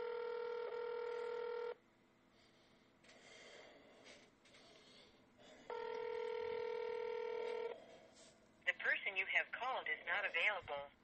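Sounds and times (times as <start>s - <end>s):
telephone ringback tone: 0.0s - 1.8s, 5.7s - 7.8s
recorded message voice: 8.7s - 11.0s.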